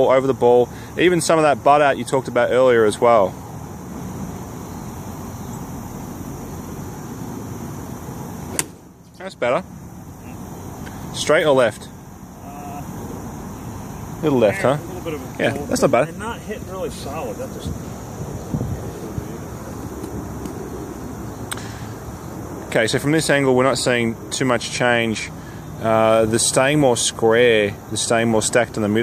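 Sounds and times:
faint outdoor background noise: 0:00.0 - 0:29.0
steady background hum: 0:00.0 - 0:29.0
golf club striking ball: 0:08.5 - 0:08.9
wind noise on microphone: 0:17.4 - 0:20.9.

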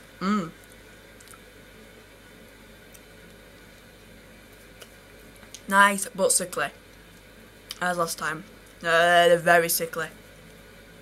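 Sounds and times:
soft chewing clicks: 0:00.5 - 0:01.6, 0:02.8 - 0:05.7, 0:06.8 - 0:08.8.

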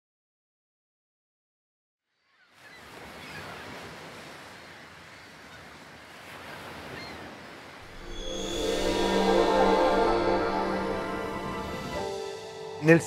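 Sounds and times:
sea surf washing: 0:02.9 - 0:13.0.

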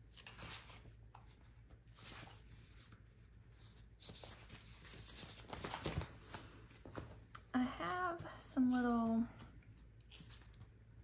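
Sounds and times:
paper pages rustling: 0:00.0 - 0:11.0
woman speaking: 0:07.5 - 0:09.5.

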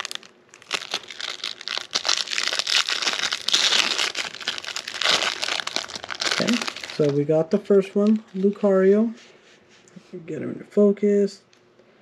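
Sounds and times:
plastic wrapping crinkling: 0:00.0 - 0:09.1.

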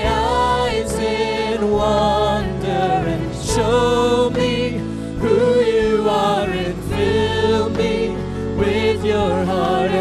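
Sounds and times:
women singing in harmony: 0:00.0 - 0:10.0.

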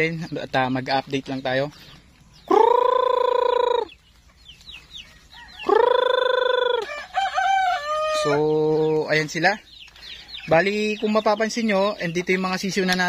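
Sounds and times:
chicken clucking: 0:00.0 - 0:13.0
chicks peeping: 0:00.0 - 0:13.0
rooster crowing: 0:05.3 - 0:08.6.

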